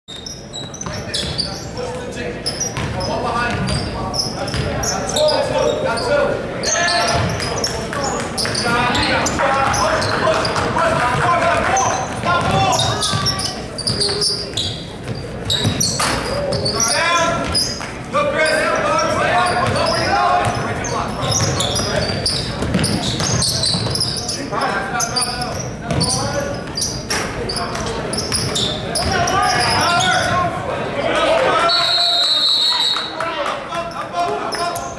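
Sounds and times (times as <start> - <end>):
basketball dribbling on hardwood floor: 12.1 - 14.0, 22.6 - 24.0
referee's whistle: 31.6 - 33.2.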